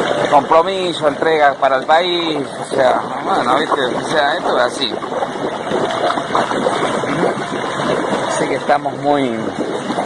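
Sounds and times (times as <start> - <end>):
hot tub jets bubbling: 0.0 - 10.0.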